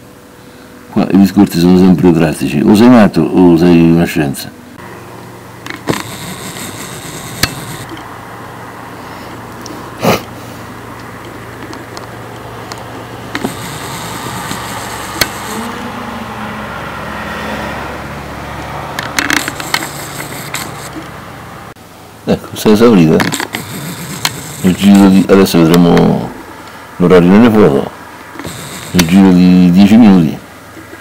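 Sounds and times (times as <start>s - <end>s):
low mechanical hum: 0.0s - 31.0s
sharp clicks: 5.7s - 8.0s, 11.0s - 15.6s.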